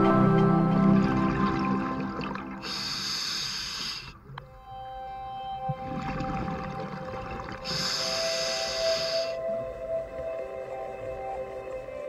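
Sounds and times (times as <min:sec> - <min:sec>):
soft ambient music: 0:00.0 - 0:12.0
scuba regulator hissing inhalation: 0:02.6 - 0:04.2, 0:07.6 - 0:09.4.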